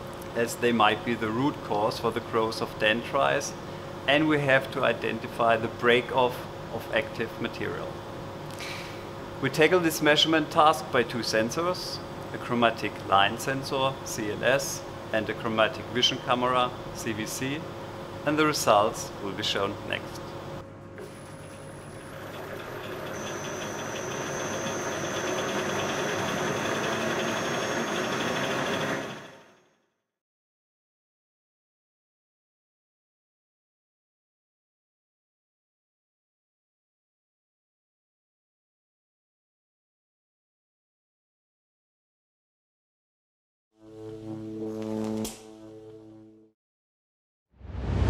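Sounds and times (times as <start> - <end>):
thin high whine: 21.0 - 29.5
rollers mechanical noise: 21.0 - 29.6.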